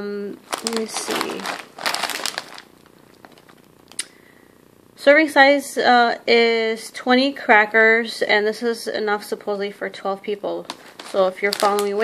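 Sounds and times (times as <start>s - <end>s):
plastic snack bag crinkling: 0.4s - 4.0s, 10.6s - 12.0s.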